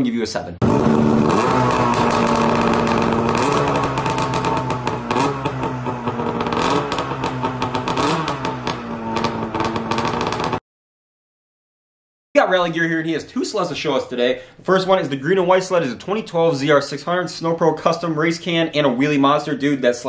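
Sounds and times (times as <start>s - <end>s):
two-stroke engine idling with throttle blips: 0.6s - 8.5s, 9.2s - 10.5s.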